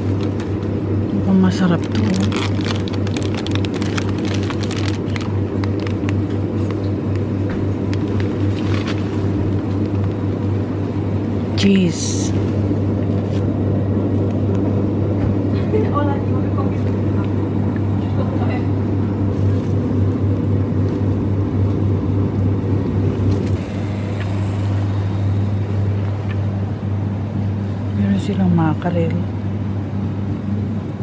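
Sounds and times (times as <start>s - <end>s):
refrigeration units humming: 0.0s - 31.0s
plastic wrapping rustling: 1.6s - 6.8s, 8.0s - 10.2s.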